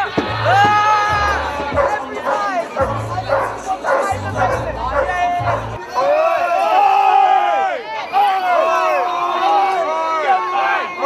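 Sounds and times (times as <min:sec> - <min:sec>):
crowd of protesters shouting: 0:00.0 - 0:11.0.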